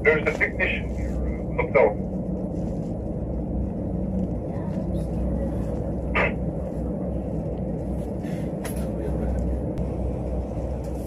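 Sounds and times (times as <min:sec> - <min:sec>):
elevator car rumbling: 0:00.0 - 0:11.0.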